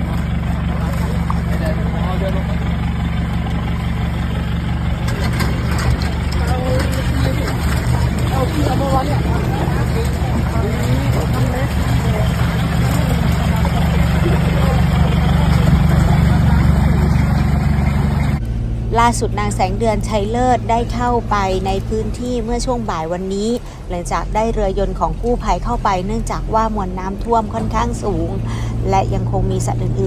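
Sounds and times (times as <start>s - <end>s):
vehicle engine idling: 0.0s - 30.0s
people talking indistinctly: 5.2s - 30.0s.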